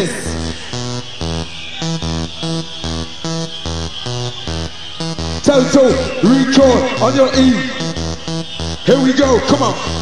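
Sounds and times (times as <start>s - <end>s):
rave music: 0.0s - 10.0s.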